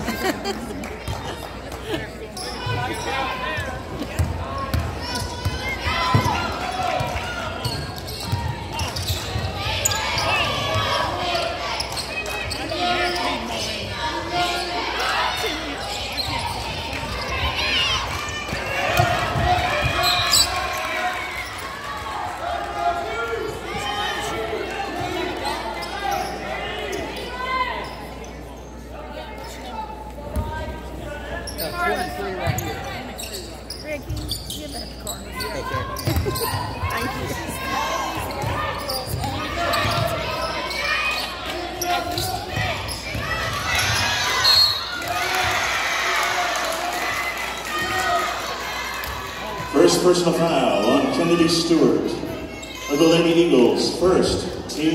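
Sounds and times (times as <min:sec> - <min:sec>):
voices chattering in gym: 0:00.0 - 0:54.9.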